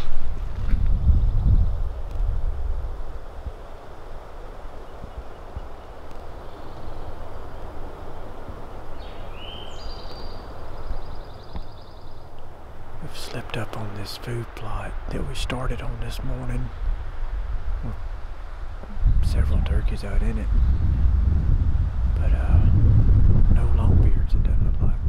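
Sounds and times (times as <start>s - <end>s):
outdoor ambience hiss: 0.0s - 25.0s
wind rumble on microphone: 0.0s - 25.0s.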